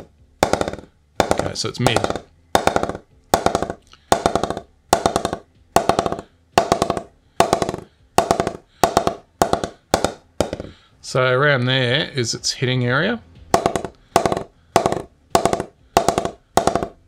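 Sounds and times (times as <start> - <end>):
mallet tapping cricket bat: 0.0 - 10.8, 13.5 - 17.0.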